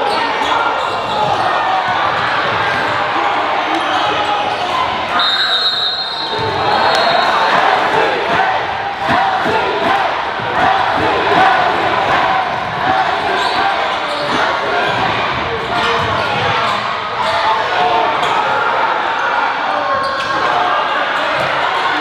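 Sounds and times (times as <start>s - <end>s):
chatter of crowd in hall: 0.0s - 22.0s
referee's whistle: 5.1s - 7.5s.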